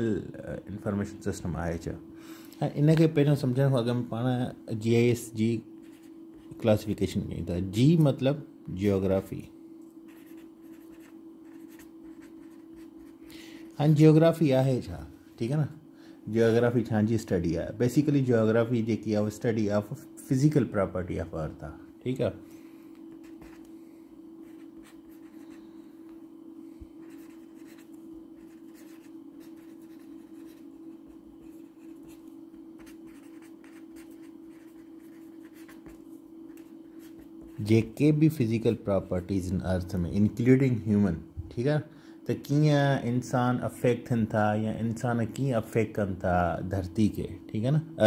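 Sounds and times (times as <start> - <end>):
faint steady hum: 0.0 - 48.0
pen scratching on paper: 10.1 - 13.2, 23.2 - 23.7, 24.4 - 25.6, 27.0 - 37.7.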